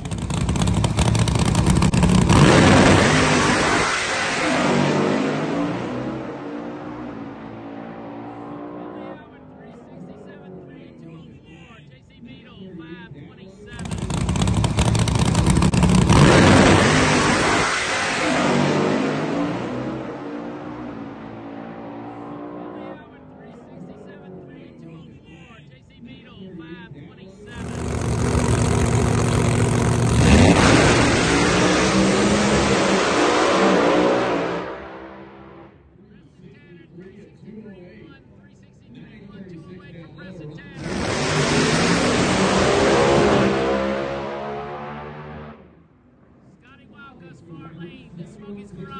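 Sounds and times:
drag cars racing at full throttle: 0.0s - 48.9s.

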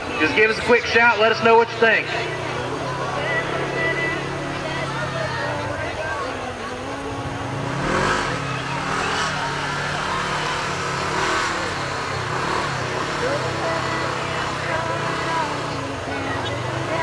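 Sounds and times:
spectators talking: 0.0s - 17.0s
engine revving hard: 7.5s - 17.0s.

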